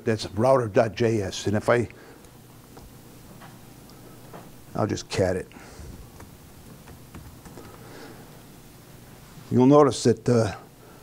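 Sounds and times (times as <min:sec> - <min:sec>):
steady room hiss: 0:00.0 - 0:11.0
laptop keyboard key taps: 0:06.0 - 0:07.8.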